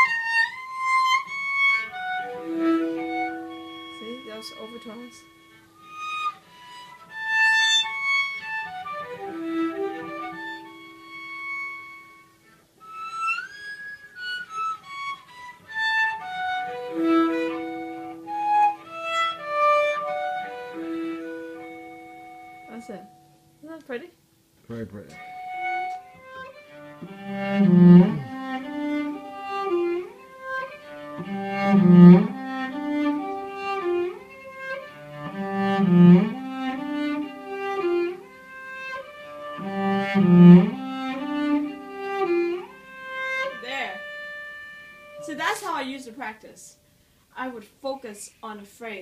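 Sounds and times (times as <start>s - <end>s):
cello harmonics: 0.0s - 23.7s, 24.7s - 46.4s
low cello notes: 0.0s - 24.1s, 24.7s - 46.3s.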